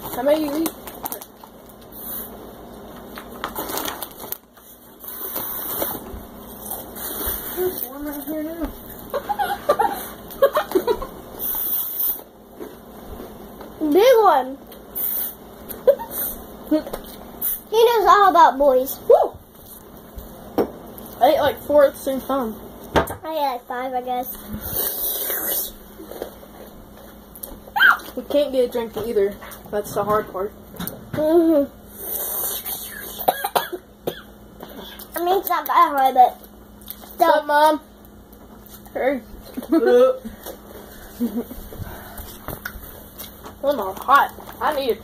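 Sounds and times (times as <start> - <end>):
child squealing: 27.7 - 28.1
child coughing: 32.8 - 35.1.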